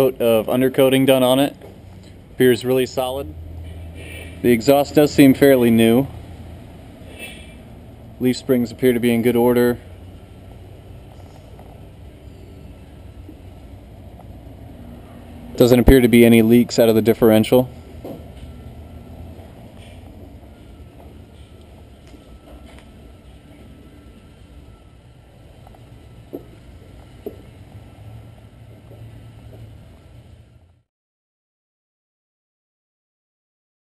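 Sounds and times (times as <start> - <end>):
faint thin whine: 8.5 - 18.6, 19.4 - 30.8.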